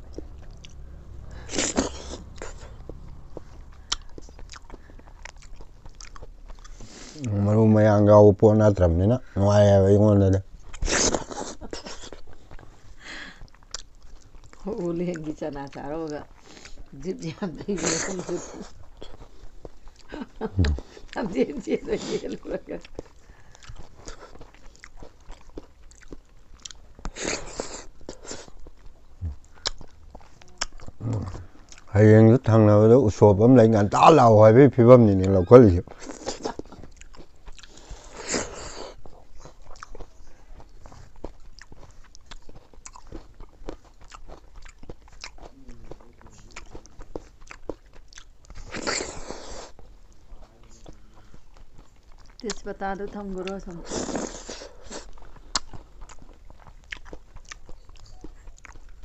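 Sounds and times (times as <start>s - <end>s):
lip smacks: 0.0s - 7.3s, 22.8s - 31.9s, 53.4s - 59.0s
wet mouth clicks and chewing: 0.0s - 7.4s, 10.4s - 17.2s, 17.8s - 31.9s, 35.1s - 59.0s
small mouth clicks: 20.0s - 21.2s, 29.1s - 31.9s.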